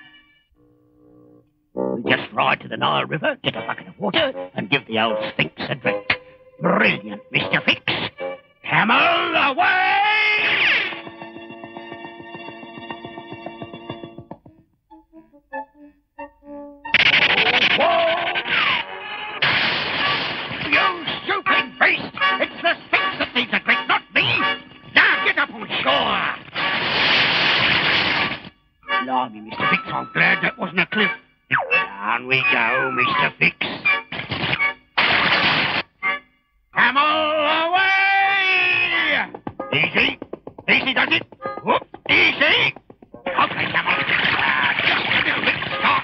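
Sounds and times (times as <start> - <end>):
cartoon music: 31.5 - 33.4.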